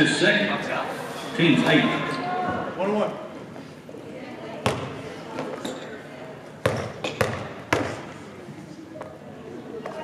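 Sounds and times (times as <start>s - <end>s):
echoing voices in a gymnasium: 0.0s - 10.0s.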